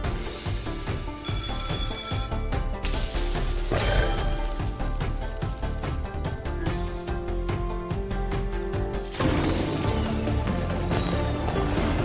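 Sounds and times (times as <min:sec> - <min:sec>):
game music: 0:00.0 - 0:12.0
chiming tones: 0:01.2 - 0:05.0
clinking coins: 0:01.2 - 0:06.2.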